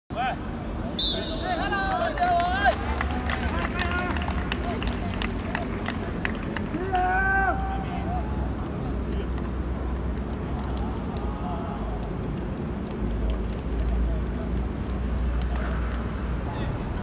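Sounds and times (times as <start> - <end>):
hand claps: 1.8 - 7.0, 8.5 - 16.4
man shouting: 6.8 - 8.0.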